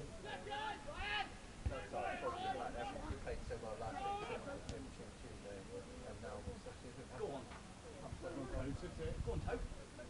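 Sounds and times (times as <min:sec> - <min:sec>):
men calling out: 0:00.1 - 0:03.1, 0:03.8 - 0:04.5.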